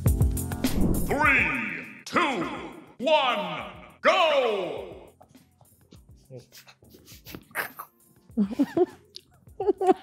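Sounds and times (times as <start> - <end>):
breaths and mouth noises: 5.2 - 8.0.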